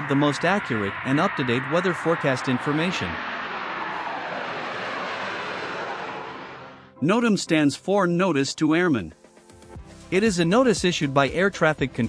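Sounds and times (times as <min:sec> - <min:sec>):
jet airliner engines roaring: 0:00.0 - 0:07.0.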